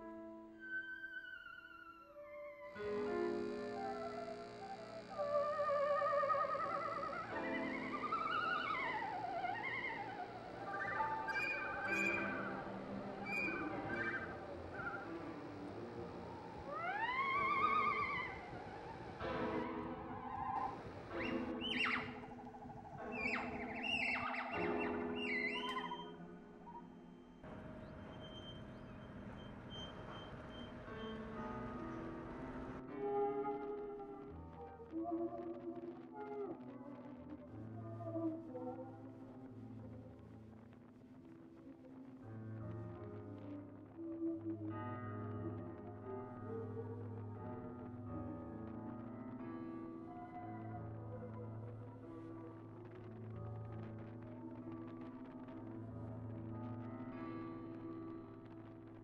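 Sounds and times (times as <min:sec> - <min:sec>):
theremin music: 0:00.6 - 0:40.2.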